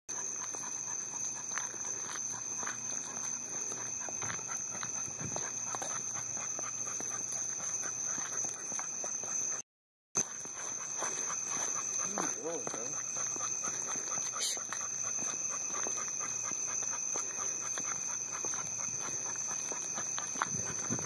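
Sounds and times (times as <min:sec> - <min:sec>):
steady high-pitched tone: 0:10.2 - 0:21.0.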